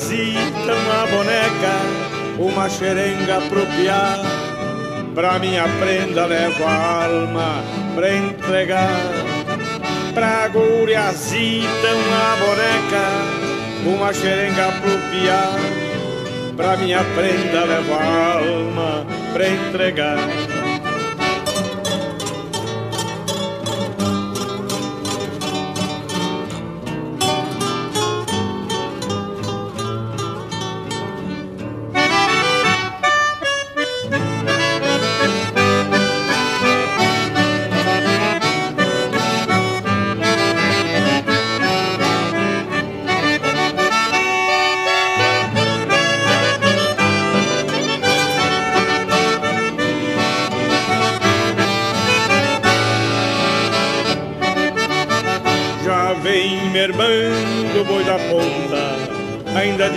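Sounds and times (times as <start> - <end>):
accordion: 0.0 - 59.9
plucked acoustic guitar: 0.0 - 59.9.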